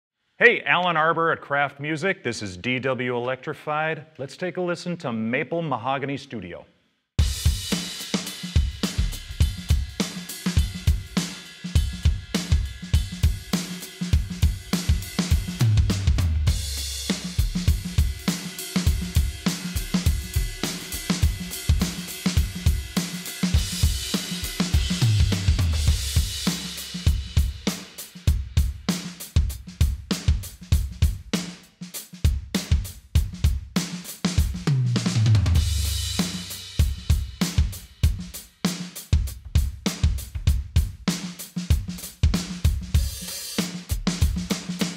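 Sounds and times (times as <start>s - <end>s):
drum kit groove: 7.2s - 44.9s
crash cymbals: 7.4s - 15.6s, 16.5s - 28.3s.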